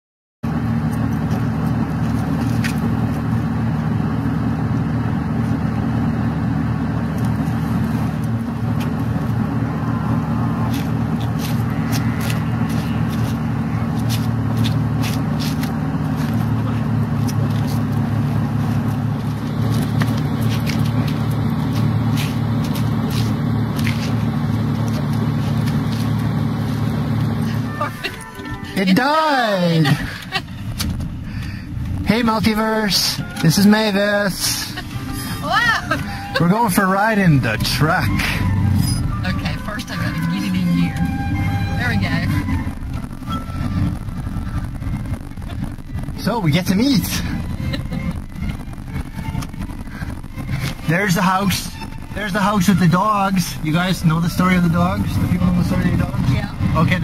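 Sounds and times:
vehicle engine idling: 0.4 - 57.0.

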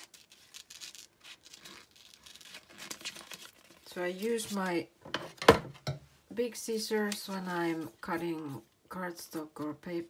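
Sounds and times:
wrapping paper crinkling: 0.0 - 4.6.

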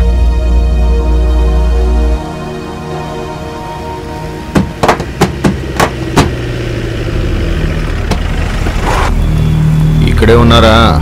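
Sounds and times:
vehicle engine running: 3.6 - 11.0.

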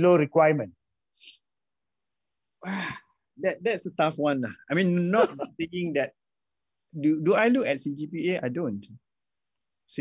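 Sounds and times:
person sighing: 2.6 - 3.2.

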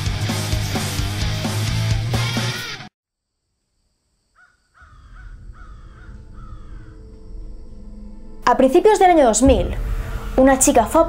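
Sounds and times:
crow cawing: 4.4 - 7.3
low rumble: 5.1 - 11.0.

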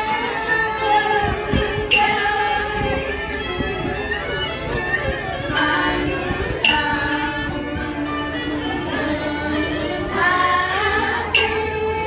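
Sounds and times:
voices chanting long notes: 0.0 - 12.0.

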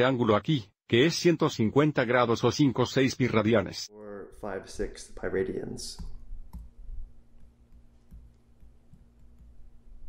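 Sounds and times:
low steady hum: 3.9 - 10.0
stylus clicking on pen tablet: 6.0 - 6.7, 7.4 - 9.6.

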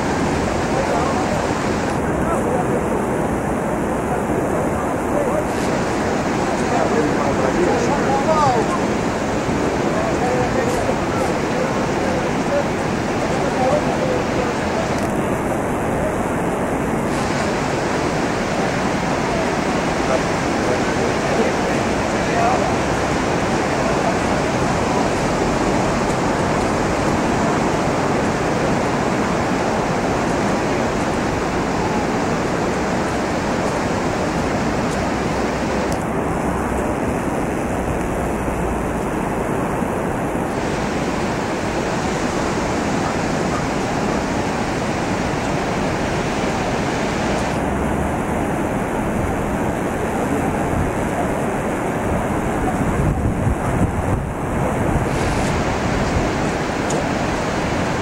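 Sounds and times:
surf breaking on a beach: 0.0 - 58.0
wind buffeting the microphone: 0.0 - 58.0.

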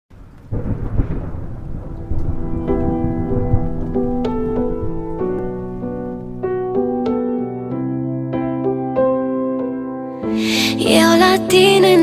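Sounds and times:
rumbling thunder: 0.1 - 7.7.

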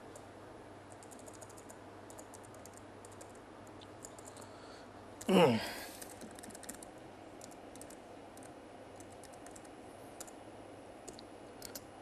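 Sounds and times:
typing on computer keyboard: 0.9 - 3.4, 4.0 - 4.5, 6.0 - 10.4, 11.1 - 11.9.

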